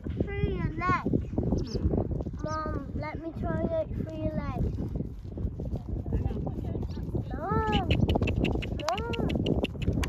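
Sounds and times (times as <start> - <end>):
horse hoofbeats on grass: 0.0 - 10.0.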